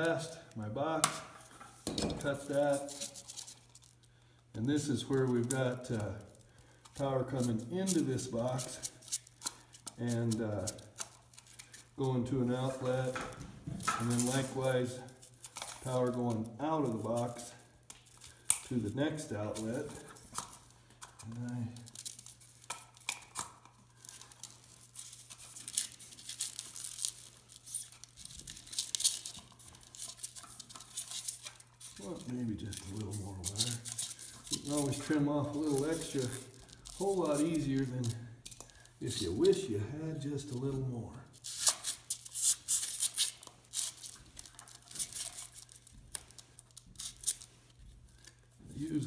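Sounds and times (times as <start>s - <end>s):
plastic cable crinkling: 0.0s - 49.0s.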